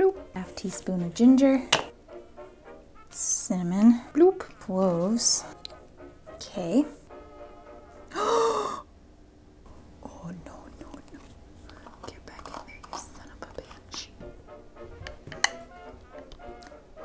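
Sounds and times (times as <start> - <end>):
soft background music: 0.0 - 17.0
woman gasping: 8.1 - 8.9.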